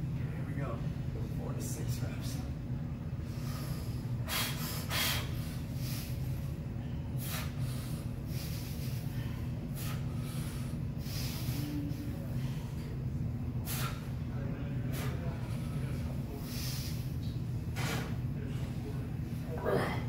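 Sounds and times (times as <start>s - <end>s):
steady low hum: 0.0s - 20.0s
man's sharp hissing breaths: 3.3s - 12.9s, 13.6s - 14.1s, 14.9s - 17.2s.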